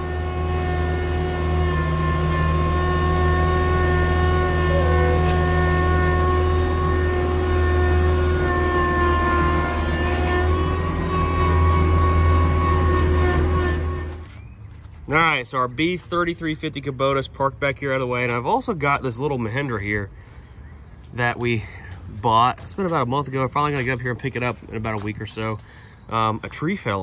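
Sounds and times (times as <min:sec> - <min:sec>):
tractor diesel engine running: 0:00.0 - 0:26.0.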